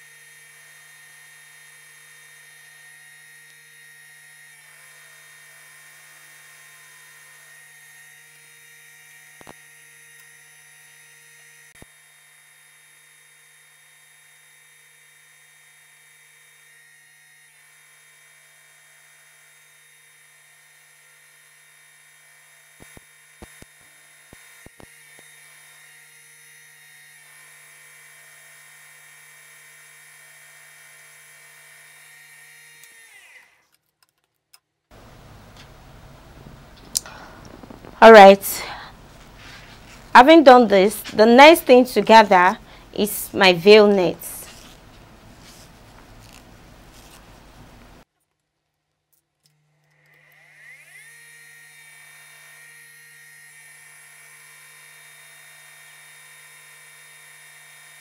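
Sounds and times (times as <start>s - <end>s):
sharp clicks: 36.8s - 38.0s.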